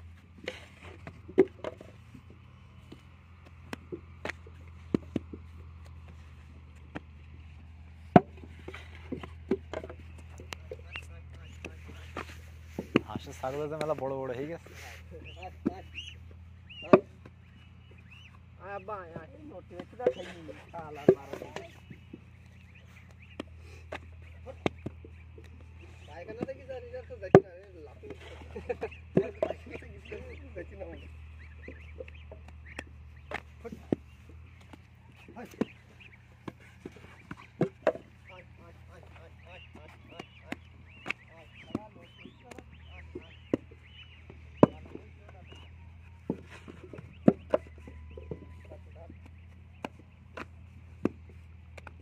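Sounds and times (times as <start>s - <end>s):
birds chirping faintly: 0.0s - 52.0s
low steady hum: 0.0s - 52.0s.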